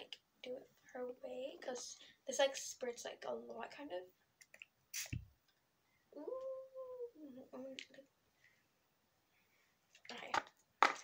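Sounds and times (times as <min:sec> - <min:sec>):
long steady voiced sound: 0:05.9 - 0:08.7.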